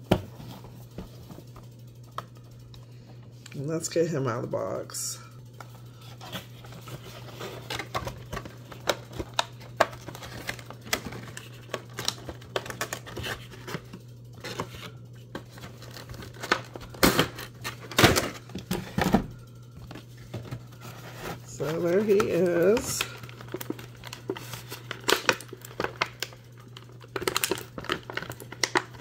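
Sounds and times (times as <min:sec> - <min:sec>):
steady low hum: 0:00.0 - 0:29.0
plastic crinkling: 0:05.7 - 0:19.1, 0:19.8 - 0:29.0
cardboard rustling: 0:05.9 - 0:26.1.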